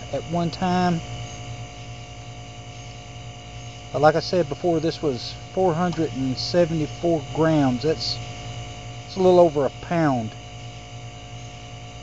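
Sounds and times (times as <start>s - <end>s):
electrical mains hum: 0.0s - 12.0s
faint electrical buzz: 0.0s - 12.0s.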